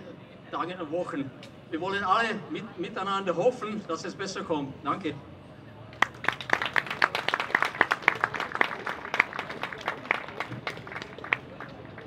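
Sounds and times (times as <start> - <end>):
small audience applauding: 6.0 - 12.0.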